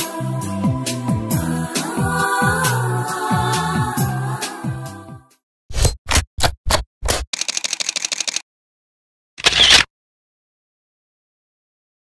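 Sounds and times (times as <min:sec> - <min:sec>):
camera shutter clicks: 0:07.3 - 0:08.4, 0:09.4 - 0:09.9.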